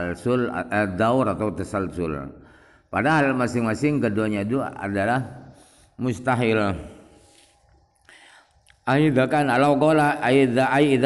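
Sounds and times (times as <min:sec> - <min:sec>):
man speaking: 0:00.0 - 0:07.2, 0:08.8 - 0:11.0
soft in-breath: 0:02.4 - 0:03.0, 0:05.4 - 0:06.0, 0:06.9 - 0:08.8.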